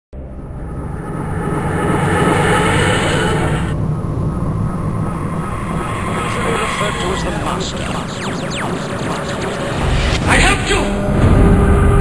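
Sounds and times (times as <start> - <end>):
dense low rumble: 0.2 - 12.0.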